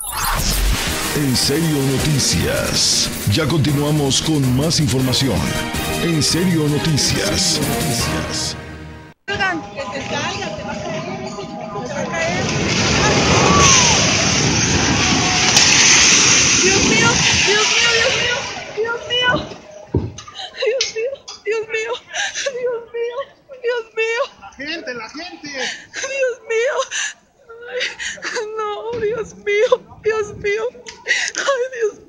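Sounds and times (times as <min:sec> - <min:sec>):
rumble of falling debris: 0:12.3 - 0:18.7.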